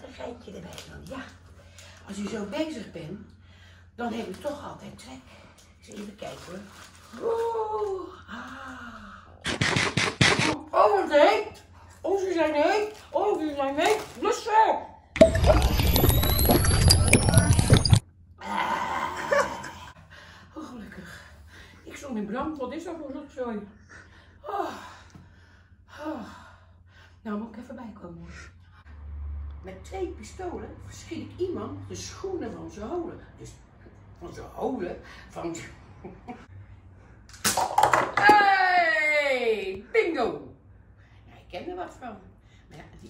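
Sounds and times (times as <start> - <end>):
dense crackling and clicking: 15.2 - 18.0
plastic cups clattering down: 37.3 - 38.4.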